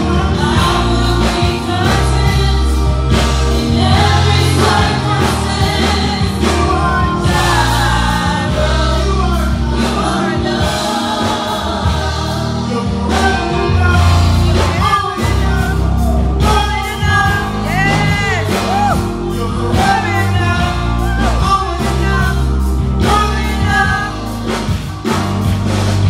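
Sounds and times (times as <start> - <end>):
backing vocalists: 0.0 - 25.1
band with bass and drums: 0.0 - 26.0
man singing lead: 12.5 - 24.8.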